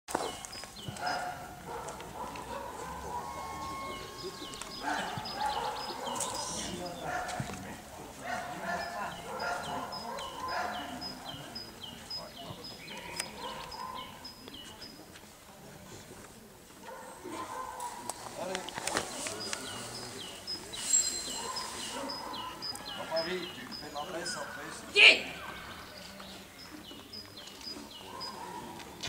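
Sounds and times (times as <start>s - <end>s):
people talking: 2.6s - 28.8s
high falling chirps: 20.3s - 23.9s.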